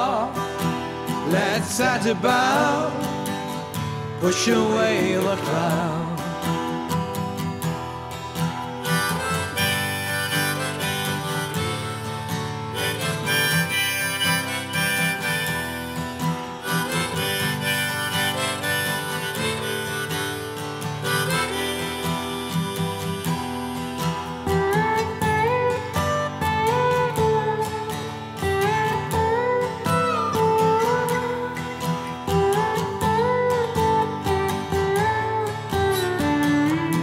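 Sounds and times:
acoustic guitar: 0.0s - 37.0s
harmonica melody: 0.0s - 37.0s.

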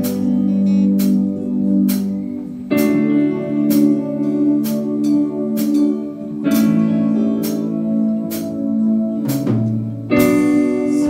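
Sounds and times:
guitar chords: 0.0s - 11.0s
keyboard chords: 0.0s - 11.0s
steady drum beat: 0.0s - 11.0s.

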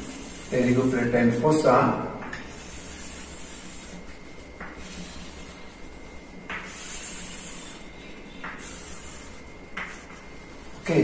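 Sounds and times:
chalk hissing on blackboard: 0.0s - 1.1s, 2.4s - 11.0s.

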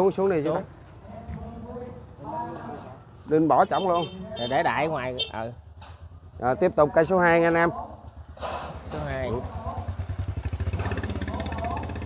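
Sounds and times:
small motorcycle engine puttering: 8.1s - 12.0s.

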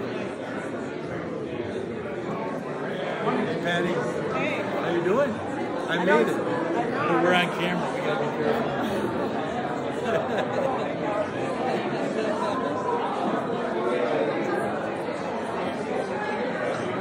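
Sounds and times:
crowd chatter in large hall: 0.0s - 17.0s.

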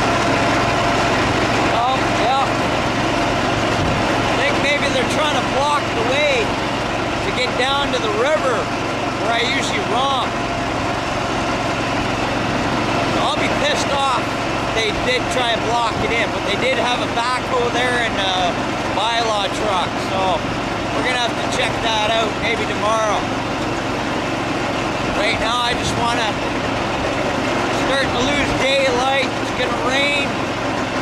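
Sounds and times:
small engine running: 0.0s - 31.0s
wind rushing over microphone: 3.7s - 4.2s.

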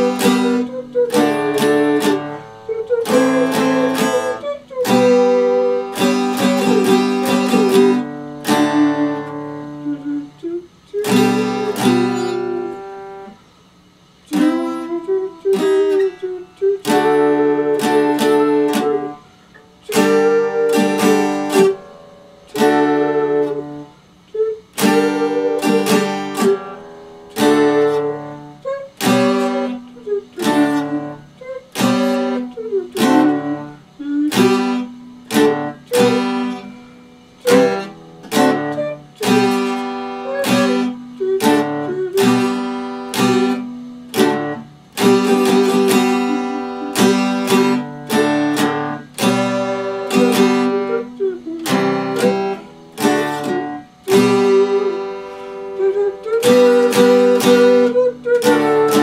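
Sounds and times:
acoustic guitar chords strummed: 0.0s - 59.0s.

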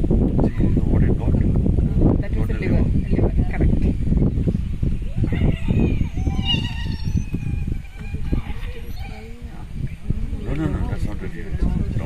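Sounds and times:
people talking in low tones: 0.4s - 12.0s
high squeaky call: 5.4s - 9.4s.

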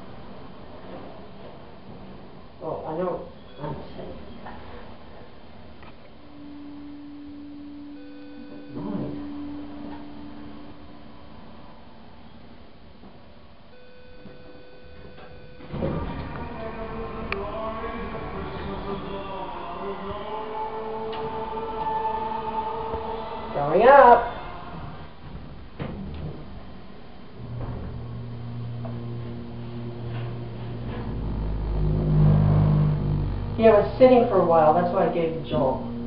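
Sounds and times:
elevator low hum: 3.3s - 36.0s
elevator doors sliding open: 15.6s - 19.1s, 24.8s - 34.1s.

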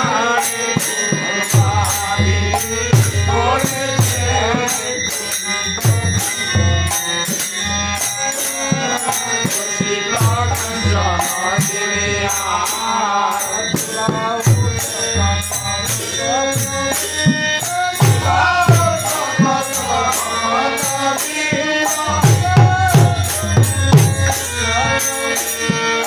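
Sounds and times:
harmonium: 0.0s - 26.0s
men singing devotional song: 0.0s - 26.0s
hand drum beat: 18.0s - 19.6s, 22.2s - 24.3s.

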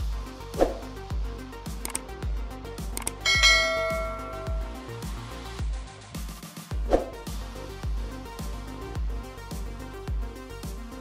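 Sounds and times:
electronic music with beat: 0.0s - 11.0s
bright bell chime: 3.2s - 4.9s.

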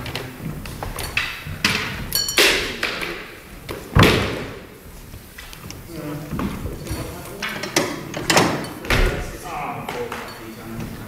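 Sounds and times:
foot thumping on wooden floor: 3.6s - 7.1s.

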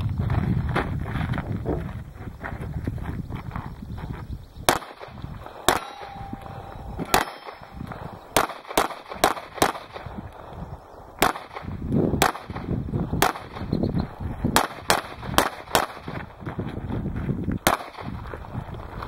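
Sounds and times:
handgun shots: 4.7s - 10.1s, 11.2s - 13.7s.

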